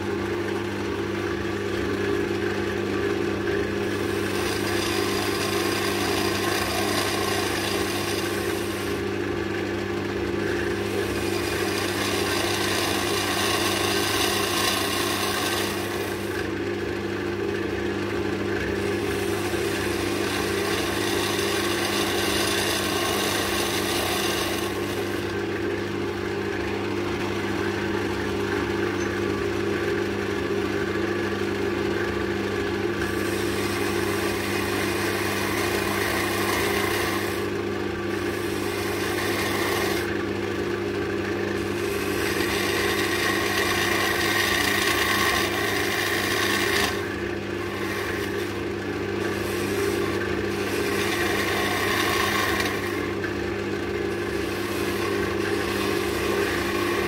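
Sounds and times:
gouge cutting spinning wood: 0:00.0 - 0:57.0
wood lathe motor humming: 0:00.0 - 0:57.0.

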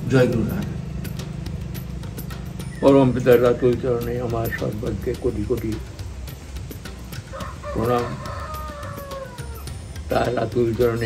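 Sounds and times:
rooster crowing: 0:07.1 - 0:10.1.

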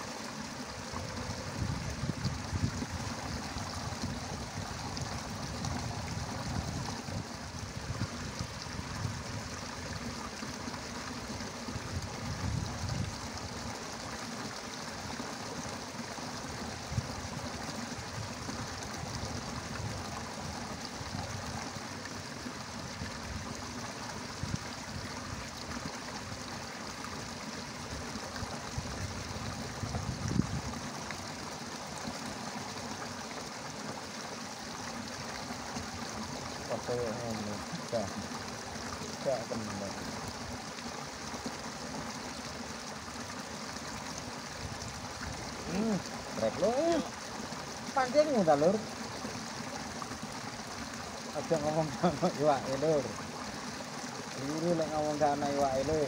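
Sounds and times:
water trickling in ditch: 0:00.0 - 0:56.0.

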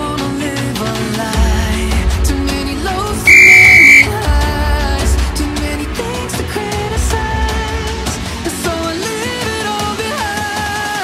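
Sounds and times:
pop music with steady beat: 0:00.0 - 0:11.0
high-pitched timer beep: 0:03.3 - 0:04.1.

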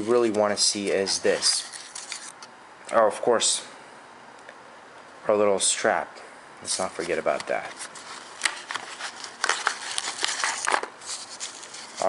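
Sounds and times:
cardboard insert clicks and scrapes: 0:06.8 - 0:12.0
packaging crinkling: 0:06.8 - 0:12.0.

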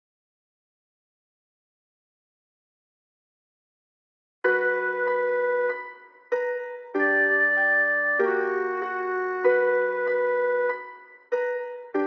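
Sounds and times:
keyboard melody loop: 0:04.5 - 0:12.0.

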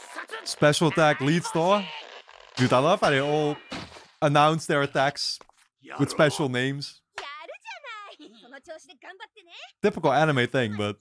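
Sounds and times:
excited cartoon character voice: 0:00.0 - 0:02.0, 0:05.9 - 0:06.6, 0:07.2 - 0:11.0
man saying yeah: 0:00.5 - 0:01.8, 0:05.9 - 0:06.9.

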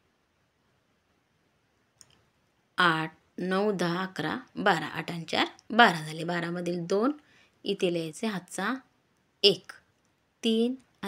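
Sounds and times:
woman counting aloud: 0:09.4 - 0:09.8, 0:10.4 - 0:10.8.

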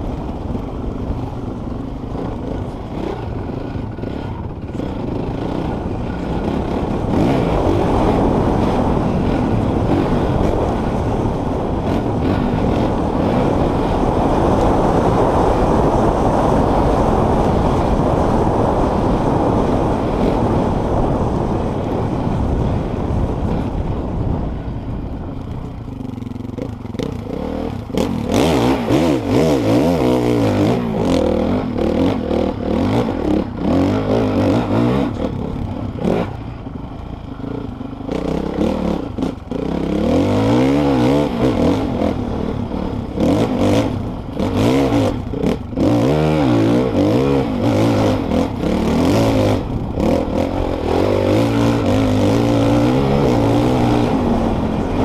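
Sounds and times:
dirt bike engine revving: 0:00.0 - 0:23.9, 0:25.9 - 0:55.0.

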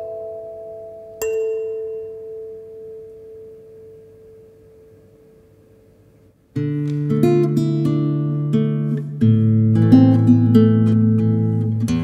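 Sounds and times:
kalimba notes ringing: 0:00.0 - 0:05.4.

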